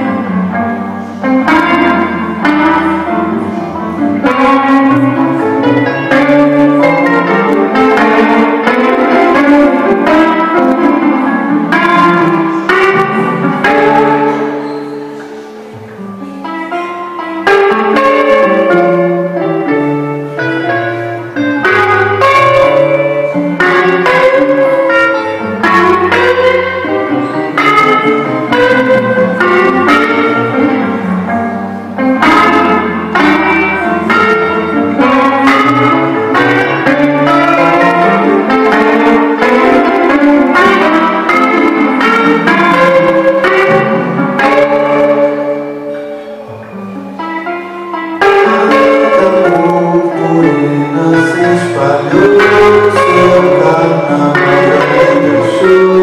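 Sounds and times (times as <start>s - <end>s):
electric guitar chords ringing: 0.0s - 56.0s.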